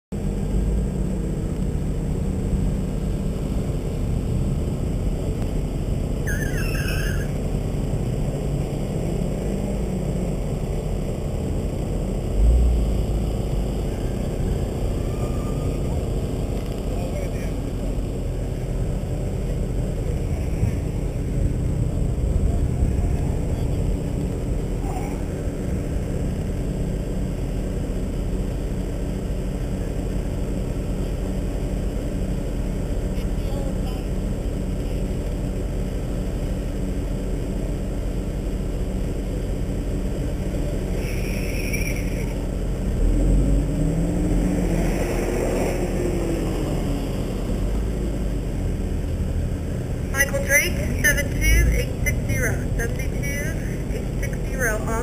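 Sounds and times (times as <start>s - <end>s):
car engine idling: 0.1s - 55.0s.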